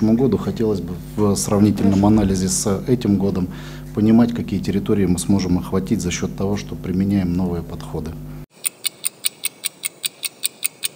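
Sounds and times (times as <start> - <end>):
meeting-room audio: 0.0 - 8.3
clock-like ticking: 8.6 - 10.9.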